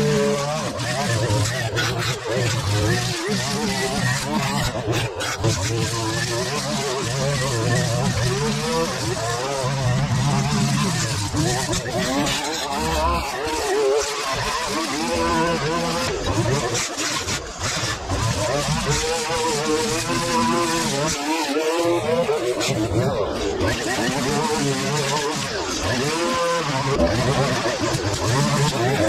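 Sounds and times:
line trimmer cutting grass: 0:00.0 - 0:29.0.

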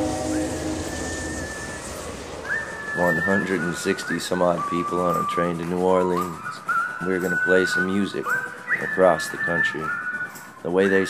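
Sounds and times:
train rumbling on rails: 0:00.0 - 0:10.0
person whistling: 0:00.0 - 0:11.0.

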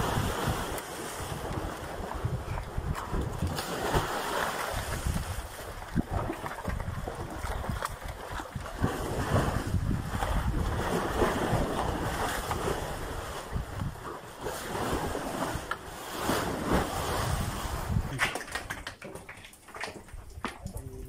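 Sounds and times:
cattle splashing through water: 0:00.0 - 0:13.4
wind buffeting microphone: 0:00.0 - 0:18.8.

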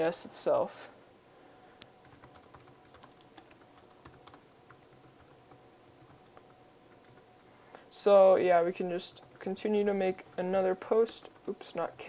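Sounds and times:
typing on computer keyboard: 0:02.0 - 0:07.5, 0:09.0 - 0:12.0.

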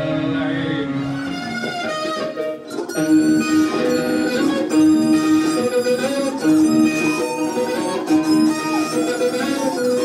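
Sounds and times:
guitars playing ringing notes: 0:00.0 - 0:10.0.

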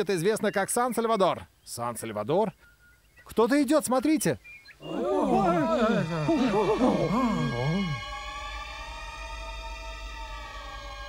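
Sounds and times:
man giving sing-song cries: 0:04.9 - 0:08.0.

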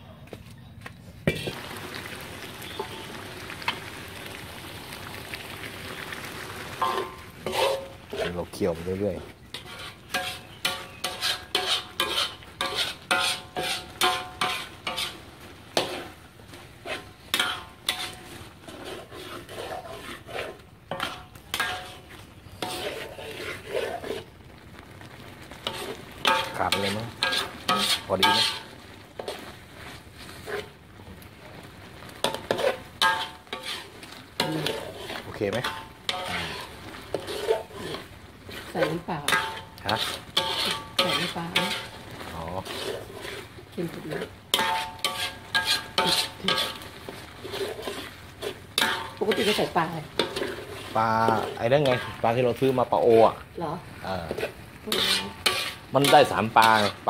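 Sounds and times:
spatula scraping metal wok: 0:02.0 - 0:04.4, 0:06.8 - 0:57.0.

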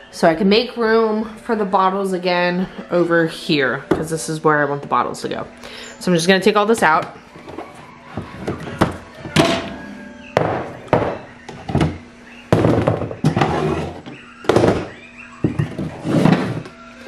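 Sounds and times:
plastic containers clattering: 0:06.6 - 0:16.8.

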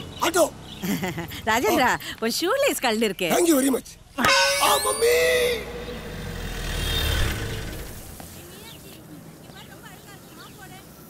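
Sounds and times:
car engine rumble: 0:05.2 - 0:08.3.

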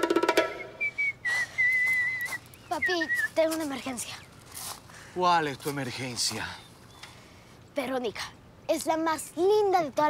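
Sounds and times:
man whistling a tune: 0:00.5 - 0:03.3.

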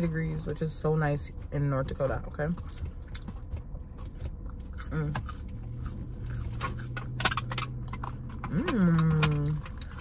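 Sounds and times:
low steady hum: 0:00.0 - 0:10.0
person chewing fries: 0:02.7 - 0:10.0.

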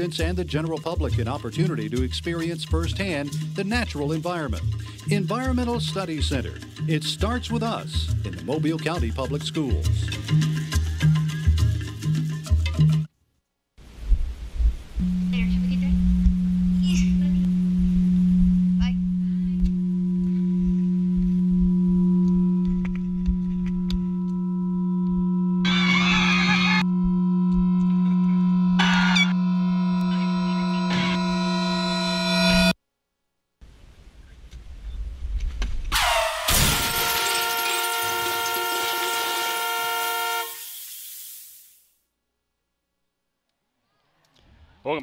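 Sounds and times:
noise hiss: 0:13.8 - 0:16.7, 0:38.8 - 0:42.0
uneven low rumble: 0:14.0 - 0:31.5
steady low hum: 0:14.7 - 0:32.8
high steady tones: 0:15.0 - 0:32.8
car horn long blast: 0:24.2 - 0:32.8, 0:36.0 - 0:40.9.

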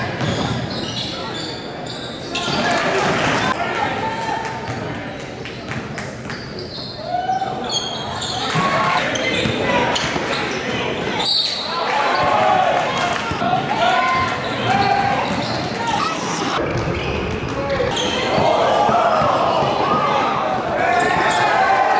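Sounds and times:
basketball bouncing on court: 0:00.1 - 0:00.7.

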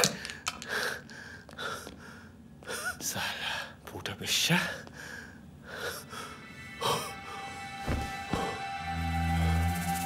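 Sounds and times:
man breathing heavily: 0:00.1 - 0:03.8, 0:04.7 - 0:08.8.

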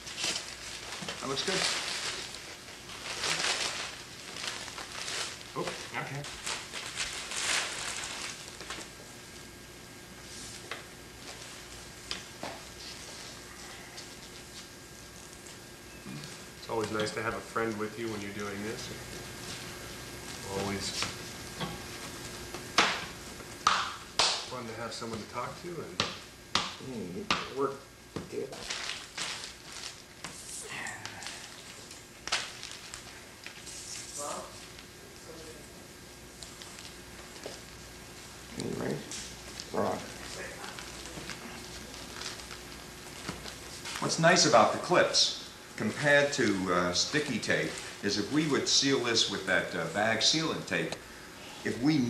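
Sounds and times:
plastic film rustling and crinkling: 0:00.0 - 0:09.0, 0:28.3 - 0:35.6, 0:36.3 - 0:37.8, 0:39.0 - 0:50.5.

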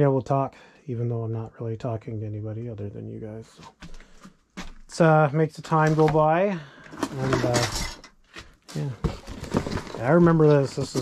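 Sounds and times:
objects knocking and clattering: 0:05.7 - 0:11.0.

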